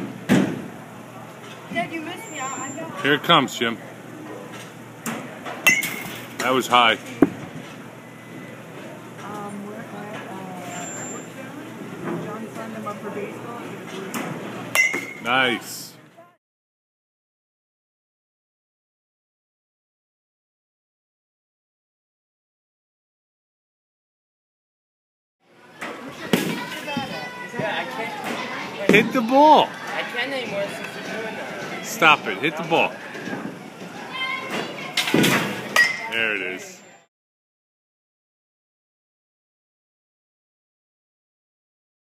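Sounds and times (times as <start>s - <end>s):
baseball striking in batting cage: 14.7s - 15.2s
faint voices murmuring: 25.5s - 37.0s.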